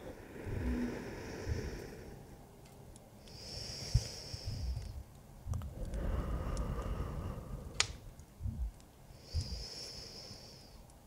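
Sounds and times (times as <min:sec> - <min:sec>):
soft low thumps: 0:00.0 - 0:01.9, 0:03.9 - 0:08.8
woman breathing: 0:00.0 - 0:02.6, 0:03.3 - 0:10.8
clicks: 0:07.8 - 0:09.5.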